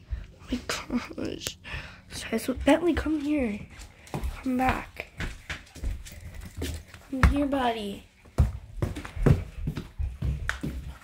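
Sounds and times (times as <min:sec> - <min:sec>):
footsteps on hard floor: 0:02.1 - 0:11.0.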